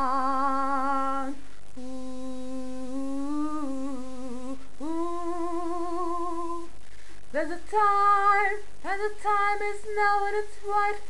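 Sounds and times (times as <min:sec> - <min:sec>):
woman singing wordless notes: 0:00.0 - 0:11.0.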